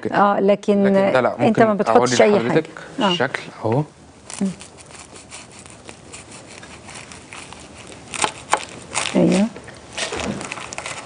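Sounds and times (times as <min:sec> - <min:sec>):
knife cutting crisp pastry: 0:04.3 - 0:11.0.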